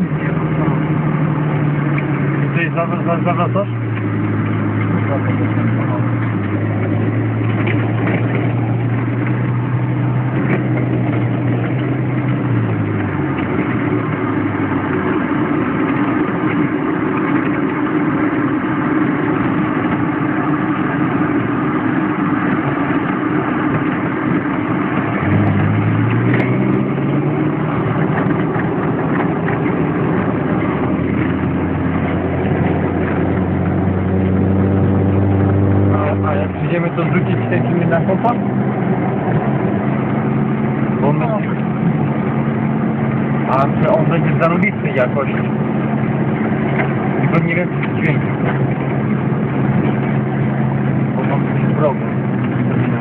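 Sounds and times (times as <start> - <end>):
road noise: 0.0 - 53.0
vehicle engine running: 0.0 - 53.0.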